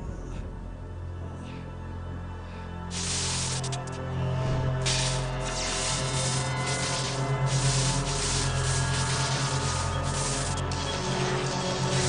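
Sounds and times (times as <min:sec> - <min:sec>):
low drone: 0:00.0 - 0:12.0
electrical discharge hissing: 0:02.9 - 0:04.0, 0:04.8 - 0:12.0.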